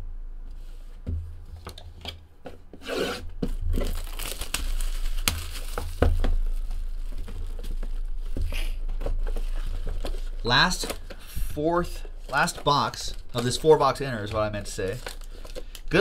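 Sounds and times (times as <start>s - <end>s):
low steady hum: 0.0s - 16.0s
plastic shrink wrap tearing: 3.1s - 8.3s, 12.3s - 14.0s, 14.6s - 16.0s.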